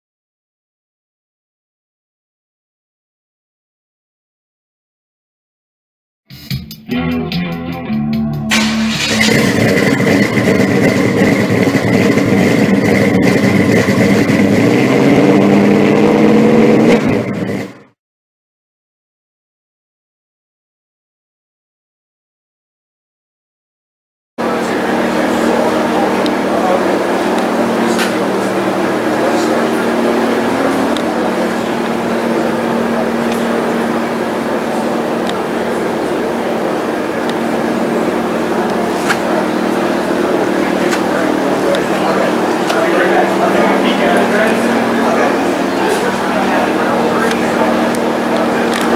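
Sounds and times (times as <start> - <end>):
high whine: 6.4 - 18.0, 24.4 - 48.9
car engine revving: 7.5 - 18.0, 24.4 - 48.9.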